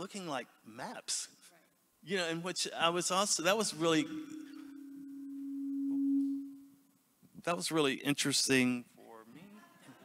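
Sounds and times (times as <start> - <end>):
microphone feedback tone: 3.8 - 6.9.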